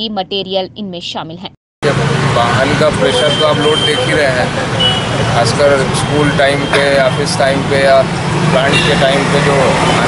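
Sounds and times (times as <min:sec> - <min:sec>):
road traffic: 0:00.0 - 0:10.0
man speaking: 0:01.8 - 0:04.7, 0:05.3 - 0:10.0.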